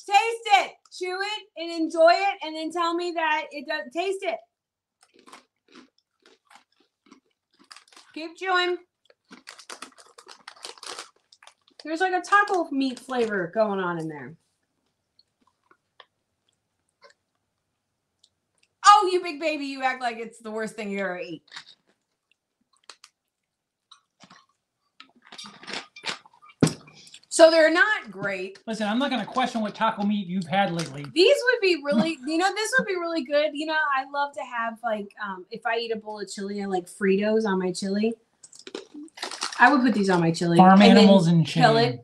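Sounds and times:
crunching of corn snacks being chewed: 5.0 - 8.2, 8.9 - 13.3, 21.4 - 23.2, 23.9 - 26.5, 38.5 - 39.6.

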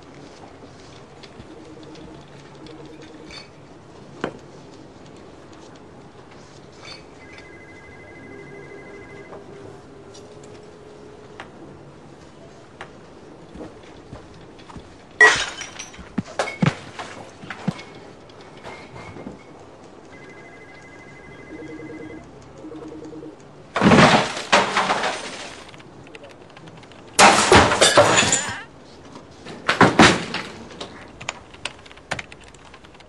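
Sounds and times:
thuds and knocks of falling: 15.2 - 18.0, 23.8 - 25.8, 27.2 - 28.7, 29.5 - 31.0.

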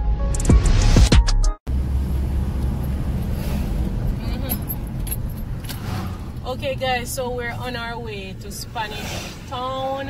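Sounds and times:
car engine and tyre rumble: 1.7 - 10.0.

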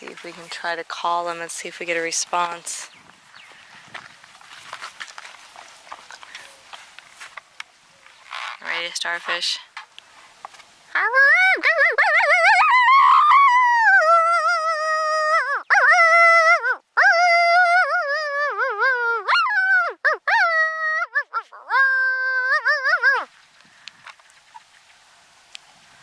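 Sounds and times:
wavering howls and yips: 11.0 - 23.4.

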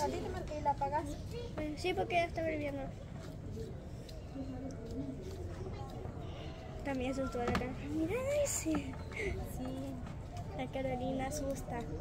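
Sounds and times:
faint background talk: 0.0 - 12.0.

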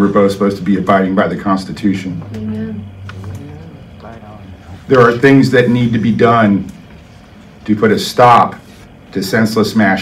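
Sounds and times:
low steady hum: 0.0 - 10.0
man speaking: 3.4 - 6.7.

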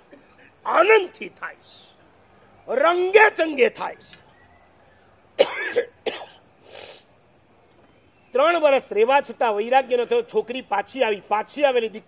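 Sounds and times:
short cough: 5.4 - 6.5.

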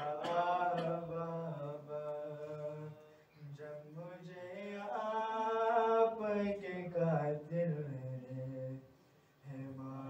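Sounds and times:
man chanting through microphone: 0.0 - 10.0.

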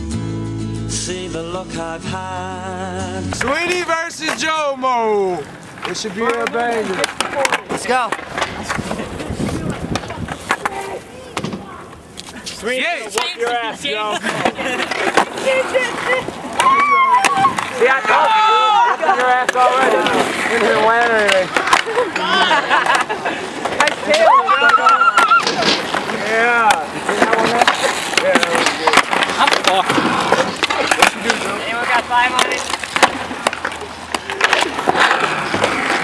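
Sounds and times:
skateboard wheels on concrete: 3.1 - 36.0
skateboard clacks: 3.4 - 4.6, 5.4 - 36.0.

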